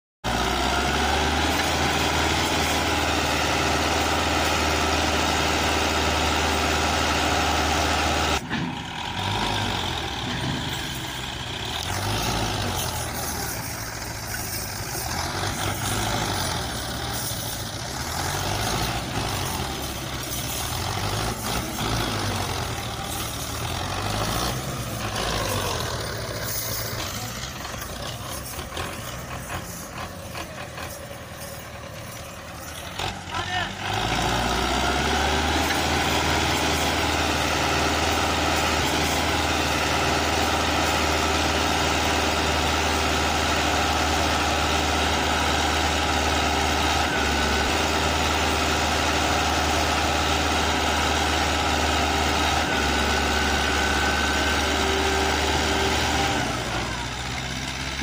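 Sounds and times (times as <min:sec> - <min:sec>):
tractor diesel engine labouring: 0:00.2 - 0:58.0.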